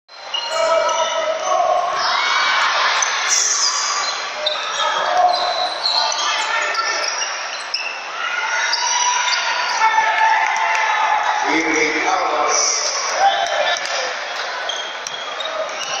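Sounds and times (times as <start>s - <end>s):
crowd voices in an arena: 0.1s - 16.0s.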